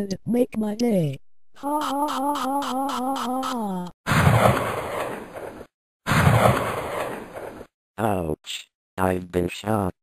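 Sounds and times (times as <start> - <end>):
gunshot blast: 4.1 - 5.5, 6.1 - 7.7.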